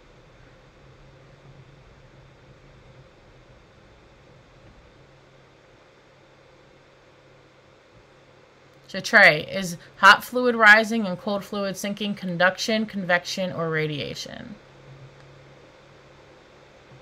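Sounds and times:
faint steady hiss: 0.0s - 17.0s
low hum: 0.0s - 17.0s.

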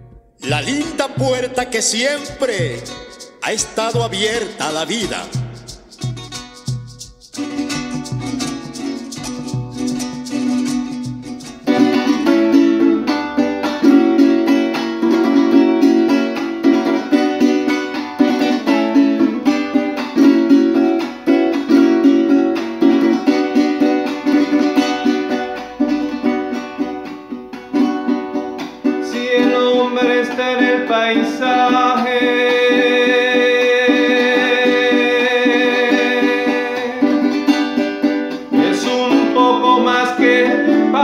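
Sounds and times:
cuatro strumming: 0.0s - 41.0s.

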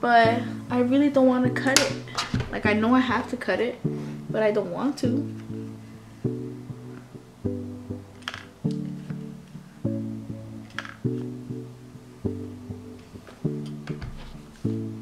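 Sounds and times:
plucked guitar chords: 0.0s - 15.0s.

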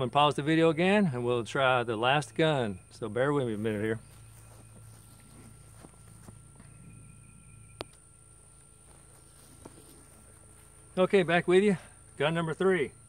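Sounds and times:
steady high whine: 0.0s - 13.0s.

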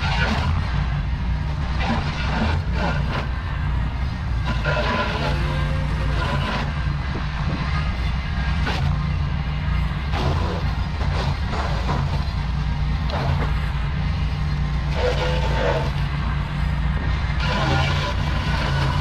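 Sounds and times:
tractor mowing brush: 0.0s - 19.0s.

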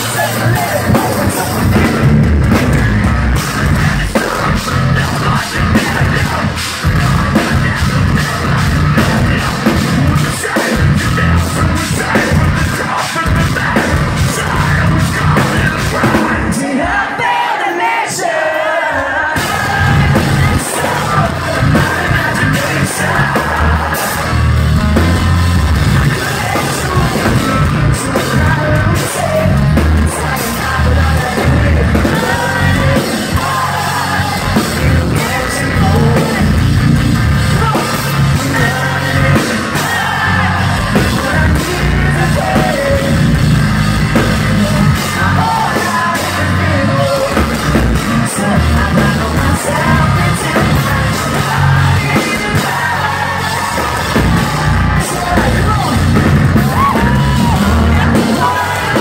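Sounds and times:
metalcore band playing live: 0.0s - 59.0s.

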